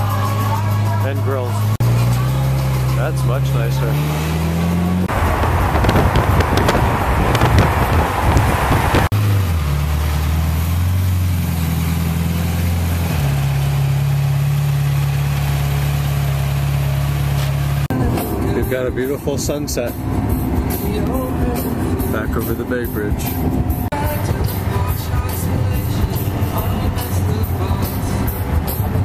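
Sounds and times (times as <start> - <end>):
car driving: 0.0 - 29.0
car engine idling: 0.0 - 29.0
wind on microphone: 5.1 - 9.1.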